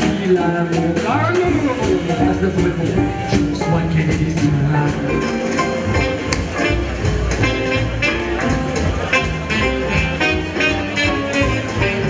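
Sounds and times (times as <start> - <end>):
drums: 0.0 - 12.0
jazz guitar lead lines: 0.0 - 12.0
upright bass: 0.0 - 12.0.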